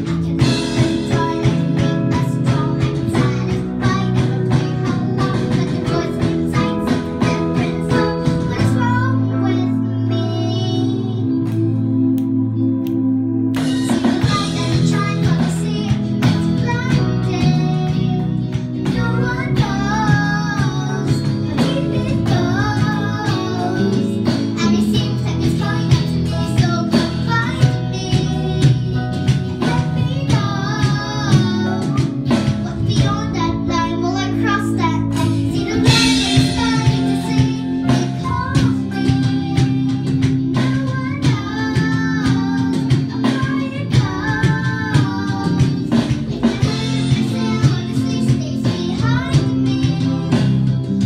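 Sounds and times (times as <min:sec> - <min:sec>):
rhythmic strumming: 0:00.0 - 0:09.6, 0:13.5 - 0:51.0
girl singing into a microphone: 0:00.0 - 0:11.5, 0:14.2 - 0:51.0
electric keyboard: 0:00.0 - 0:51.0
guitar: 0:00.0 - 0:51.0
live band playing: 0:00.0 - 0:51.0
steady beat: 0:29.1 - 0:47.9.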